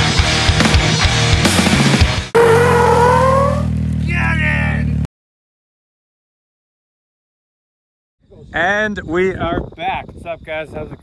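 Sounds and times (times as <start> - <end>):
utility vehicle engine revving: 2.4 - 5.0.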